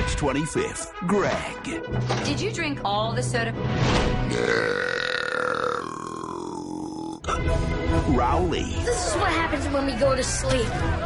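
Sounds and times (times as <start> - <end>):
boy burping: 4.3 - 7.5.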